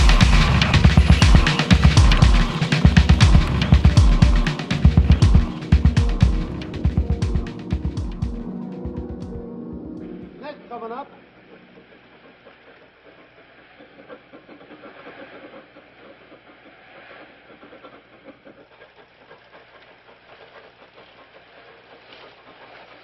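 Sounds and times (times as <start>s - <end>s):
steady hiss: 0.0s - 9.3s.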